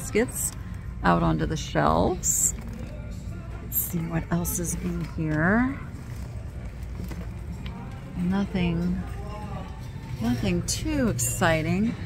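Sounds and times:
store background noise: 0.0s - 12.0s.

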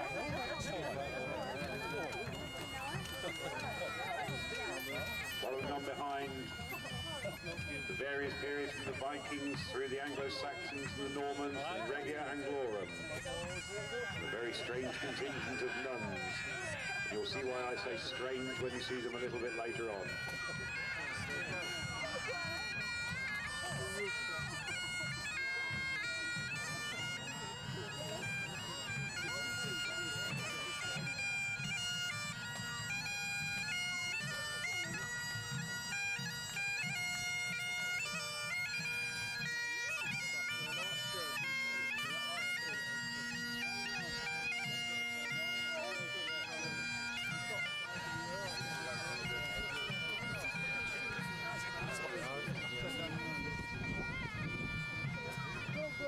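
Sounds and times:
bagpipes playing marching tune: 0.0s - 56.0s.

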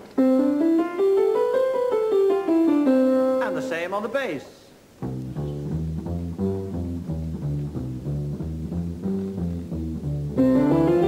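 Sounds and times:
scale on bass guitar and piano: 0.0s - 3.9s, 5.0s - 11.0s
higher rising melodic line: 10.4s - 11.0s.

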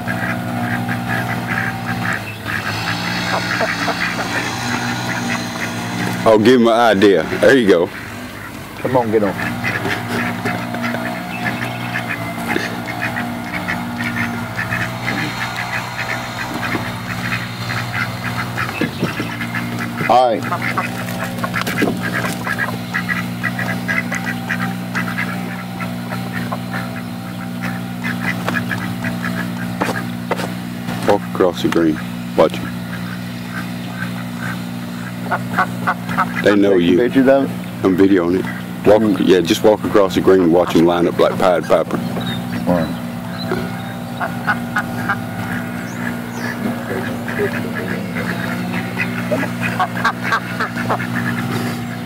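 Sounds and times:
ducks quacking: 0.0s - 52.0s
low motor hum: 0.0s - 52.0s.

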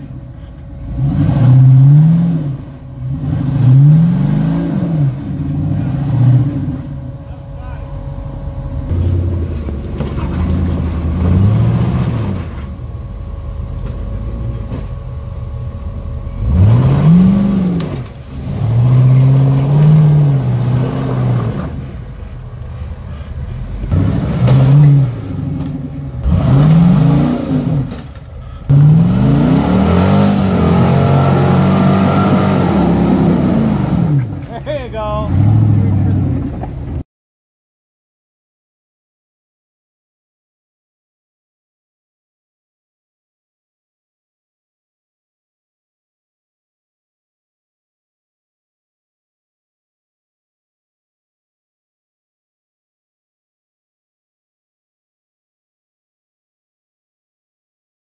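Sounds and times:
engine revving: 0.8s - 7.1s, 8.8s - 12.7s, 16.3s - 22.0s, 23.7s - 28.1s, 28.7s - 36.7s.

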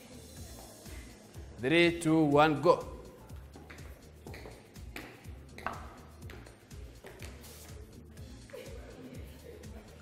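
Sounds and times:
quiet background music: 0.0s - 10.0s
high heels clicking on tiles: 3.2s - 7.8s.

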